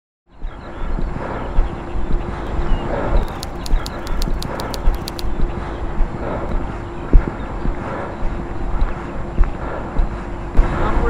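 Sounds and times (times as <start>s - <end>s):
sharp high clicks: 3.2s - 5.3s.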